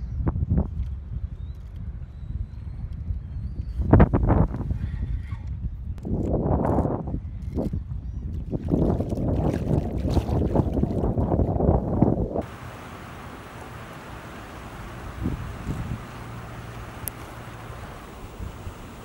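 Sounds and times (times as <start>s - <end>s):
wind buffeting microphone: 0.0s - 19.0s
fish splashing in water: 8.6s - 11.3s, 12.4s - 19.0s.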